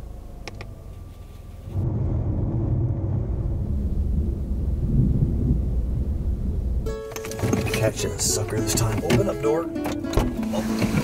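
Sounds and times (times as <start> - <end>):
loud low rumble: 1.6 - 7.1.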